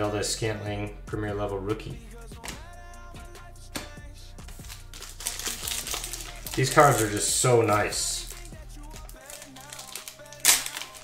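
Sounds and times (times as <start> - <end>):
faint background music: 0.0 - 11.0
plastic wrapping crackle: 4.5 - 11.0.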